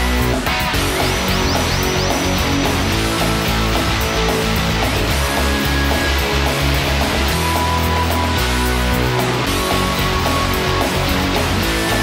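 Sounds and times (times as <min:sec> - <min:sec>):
loud rock music with guitar: 0:00.0 - 0:12.0.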